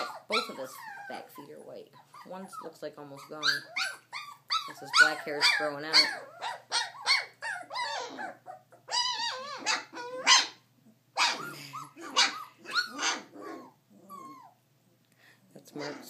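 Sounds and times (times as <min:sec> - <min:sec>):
puppies barking and yipping: 0:00.0 - 0:14.7.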